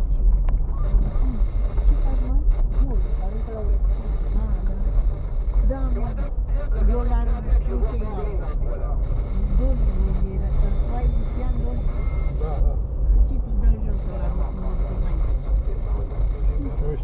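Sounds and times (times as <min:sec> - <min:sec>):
people talking indistinctly: 0:00.0 - 0:17.0
tyres rumbling on dirt road: 0:00.0 - 0:17.0.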